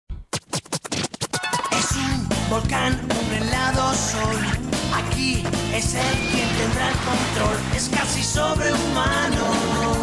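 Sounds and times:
turntable record scratches: 0.3 - 1.9, 5.8 - 9.1
theme music: 1.4 - 10.0.

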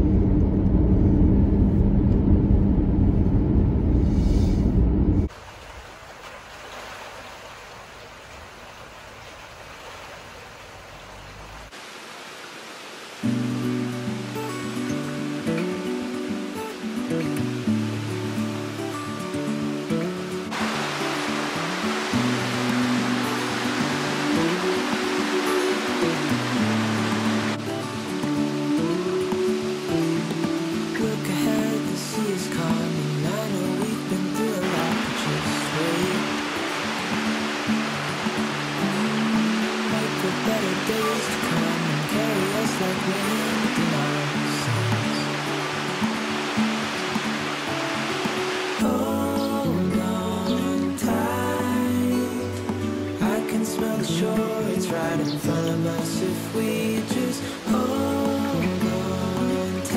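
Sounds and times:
car road rumble: 0.0 - 5.3
instrumental background music: 13.3 - 59.9.

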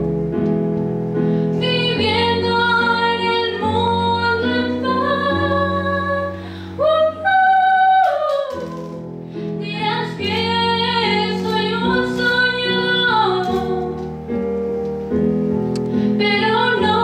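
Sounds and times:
woman singing into microphone: 1.6 - 14.1, 16.2 - 17.0.

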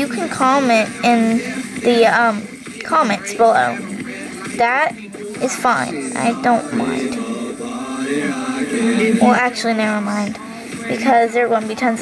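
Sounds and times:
song playing on radio: 0.0 - 12.0.

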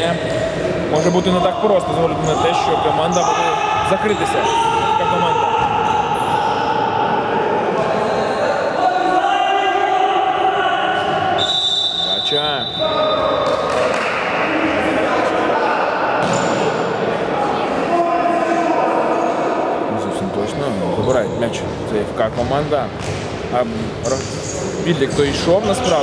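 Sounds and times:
players shouting: 1.0 - 12.1
high whistle blast: 11.4 - 13.2.

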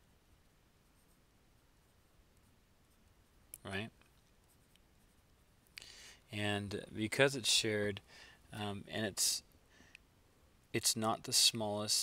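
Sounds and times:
stylus tapping and scratching on screen: 0.7 - 5.9.

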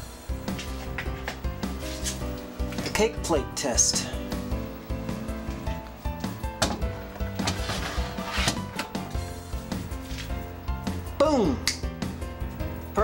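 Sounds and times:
background music: 0.0 - 13.0
plastic scraping on glass shelf: 7.4 - 8.9.

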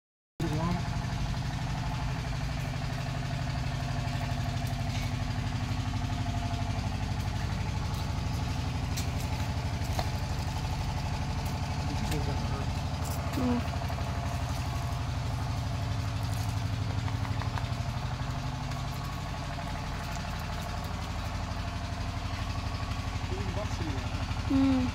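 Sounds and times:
motorcycle engine idling: 0.4 - 24.9.

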